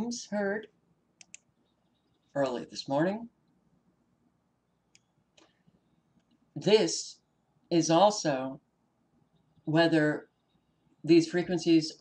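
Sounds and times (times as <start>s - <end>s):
faint clicks: 1.2s - 2.3s.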